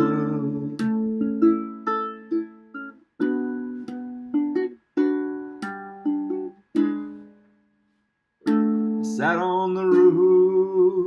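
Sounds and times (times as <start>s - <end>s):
ukulele strumming: 0.0s - 7.6s, 8.4s - 11.0s.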